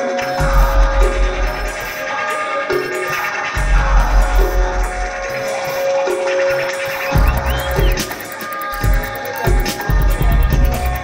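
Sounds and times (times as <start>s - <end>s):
fast high ticks: 5.2s - 11.0s
long held electronic tone: 7.0s - 9.5s
deep pulsing bass: 7.2s - 8.0s.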